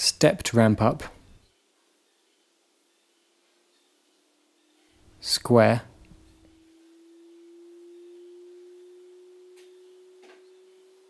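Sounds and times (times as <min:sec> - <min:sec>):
faint electronic pure tone: 0:01.2 - 0:11.0.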